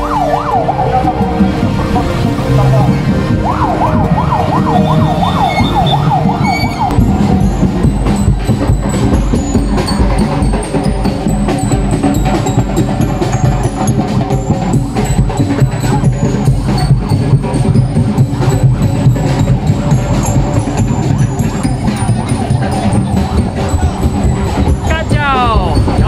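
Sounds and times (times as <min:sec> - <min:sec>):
vehicle siren yelping: 0:00.0 - 0:07.5
street percussion band playing: 0:00.0 - 0:26.0.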